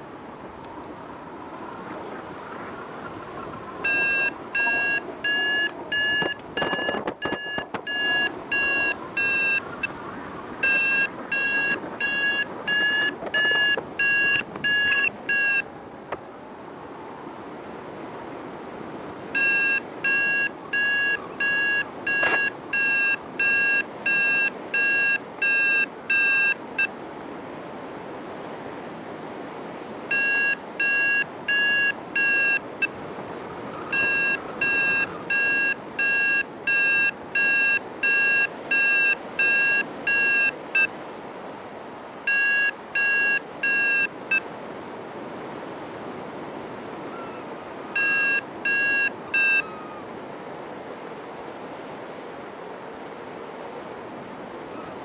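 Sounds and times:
wind on microphone: 1.5 - 15.1
variometer short beeps: 3.8 - 9.9, 10.6 - 15.6, 19.4 - 26.9, 30.1 - 32.9, 33.9 - 40.9, 42.3 - 44.4, 48.0 - 49.7.

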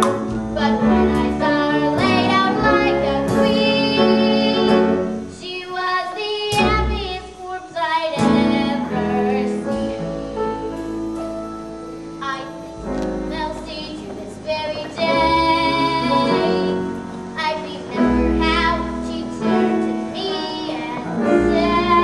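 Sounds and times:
live instrumental accompaniment: 0.0 - 5.4, 6.2 - 22.0
girl singing with vibrato: 0.5 - 11.0, 12.2 - 22.0.

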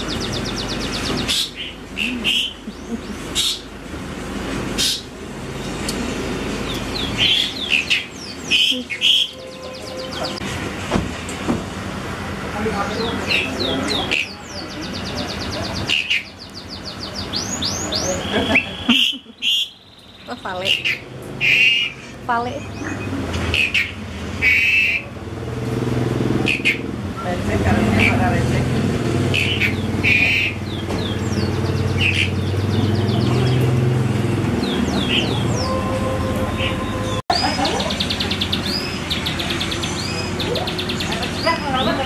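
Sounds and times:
small birds chirping: 0.0 - 3.8, 4.7 - 10.5, 12.6 - 25.1, 26.4 - 35.8, 36.6 - 42.0
voices in background: 12.4 - 18.7.

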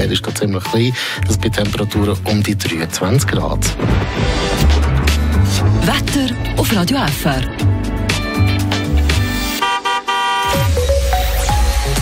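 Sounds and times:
radio jingle music: 0.0 - 12.0
car horn honk: 9.4 - 10.8.

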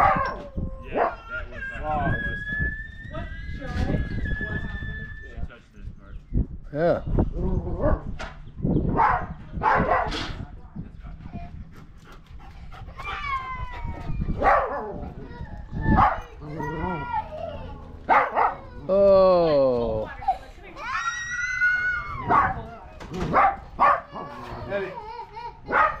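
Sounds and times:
dog whining and yelping: 12.7 - 18.9.

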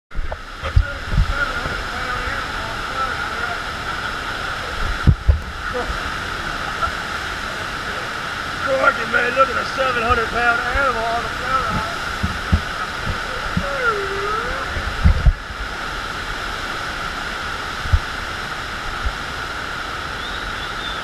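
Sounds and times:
water rushing over wave ramp: 0.1 - 21.0
man speaking: 8.6 - 12.0
low thumps: 11.6 - 13.9.

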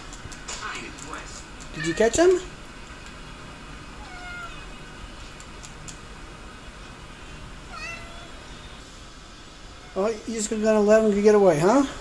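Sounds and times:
cat meowing faintly: 1.7 - 2.5, 4.0 - 4.8, 7.7 - 8.7.

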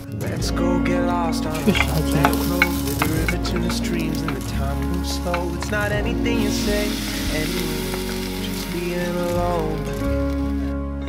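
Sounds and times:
sausage and garlic sizzling: 1.3 - 10.7
wooden spatula scraping pot: 1.5 - 5.9.

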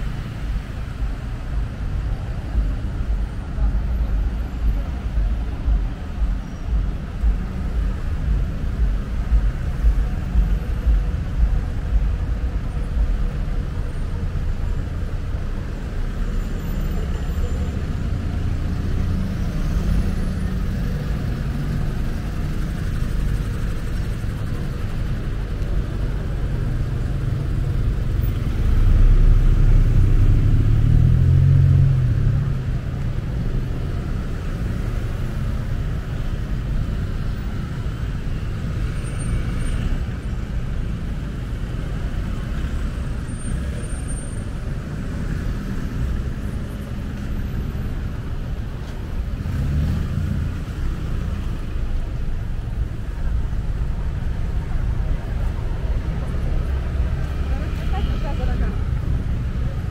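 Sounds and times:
road traffic passing: 0.0 - 59.9
vehicle engine: 0.0 - 59.9.

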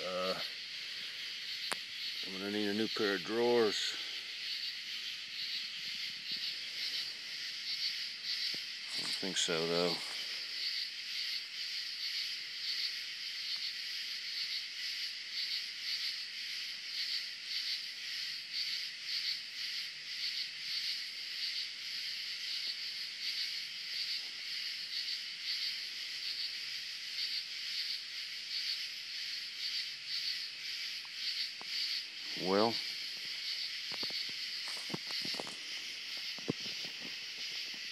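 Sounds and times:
night insects trilling: 0.0 - 37.9.

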